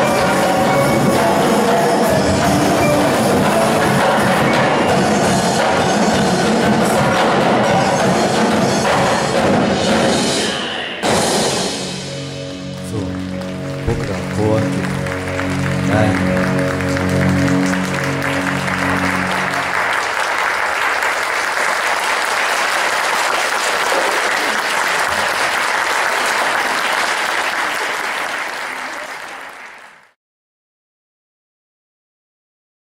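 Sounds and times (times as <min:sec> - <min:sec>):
percussion ensemble sustained chord: 0:00.0 - 0:10.4, 0:11.0 - 0:22.3
audience applauding: 0:12.7 - 0:30.2.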